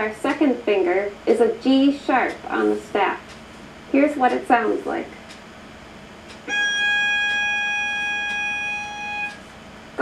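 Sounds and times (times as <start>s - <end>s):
violin playing a bowed note: 6.5s - 9.4s.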